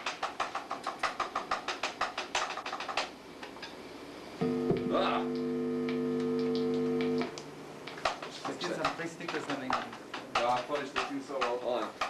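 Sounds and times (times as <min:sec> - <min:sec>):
guitar strings plucked: 0:04.4 - 0:07.4.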